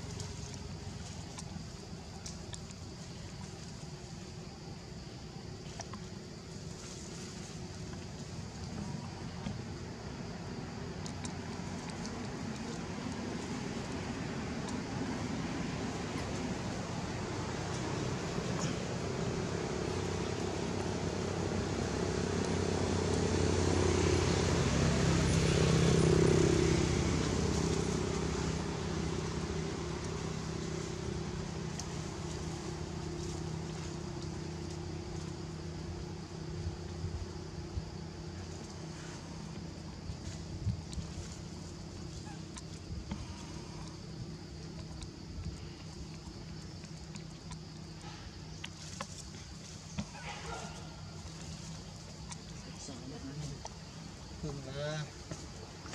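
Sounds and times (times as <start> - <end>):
vehicle engine humming: 0.0 - 55.9.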